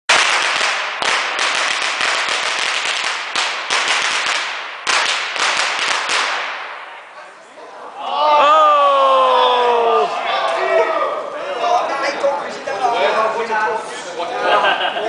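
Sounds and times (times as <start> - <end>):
firecrackers banging rapidly: 0.1 - 7.2.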